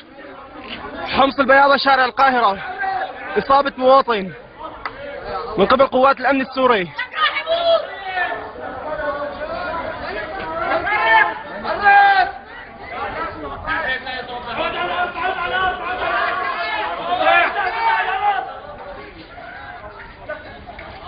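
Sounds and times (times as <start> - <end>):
men talking over each other: 0.0 - 21.0
men shouting: 0.2 - 20.5.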